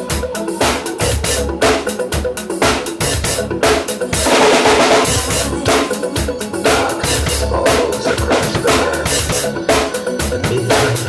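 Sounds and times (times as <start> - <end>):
drum kit playing a beat: 0.0 - 11.0
pop backing track: 0.0 - 11.0.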